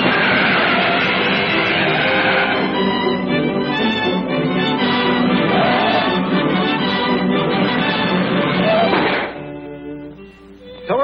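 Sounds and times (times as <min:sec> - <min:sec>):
orchestral cartoon music: 0:00.0 - 0:11.0.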